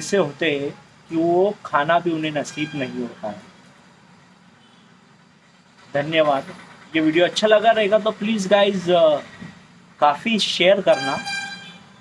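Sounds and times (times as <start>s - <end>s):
man speaking: 0.0s - 3.5s, 6.0s - 9.3s, 10.0s - 11.4s.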